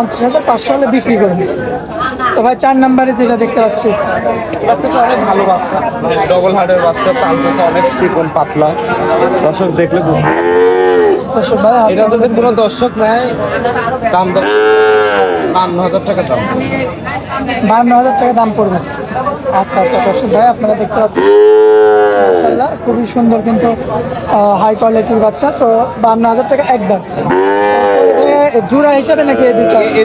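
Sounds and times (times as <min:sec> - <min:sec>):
bull mooing: 0:10.1 - 0:11.3, 0:14.4 - 0:15.7, 0:21.1 - 0:22.7, 0:27.2 - 0:28.6, 0:29.2 - 0:30.0.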